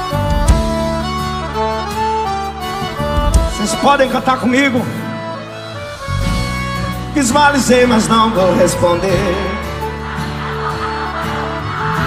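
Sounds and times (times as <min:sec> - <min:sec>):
sustained bass notes: 0:00.0 - 0:10.1.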